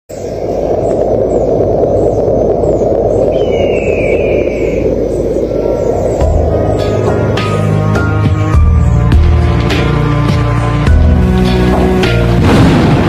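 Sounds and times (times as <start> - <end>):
faint high chirps: 0.1 - 7.6
low rushing noise: 0.1 - 13.0
falling whistle-like tone: 3.3 - 6.3.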